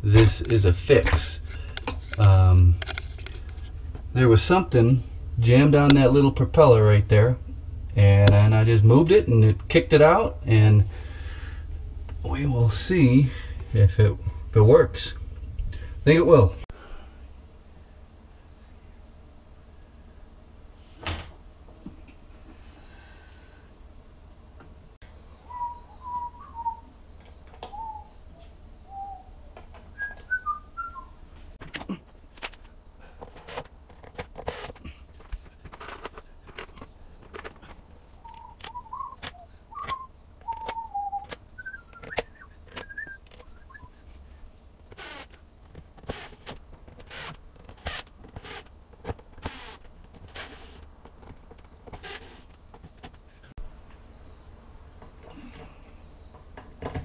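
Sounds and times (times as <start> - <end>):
person whistling a tune: 30.0 - 31.1, 38.2 - 44.0.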